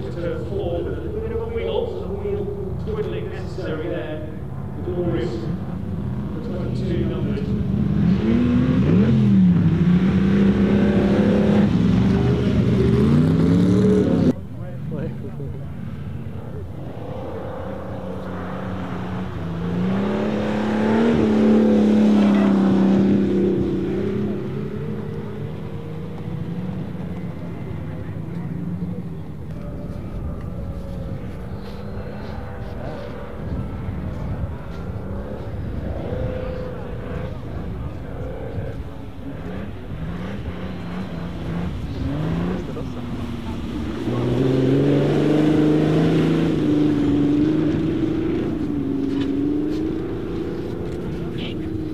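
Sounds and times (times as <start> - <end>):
car engine revving: 0.0 - 51.9.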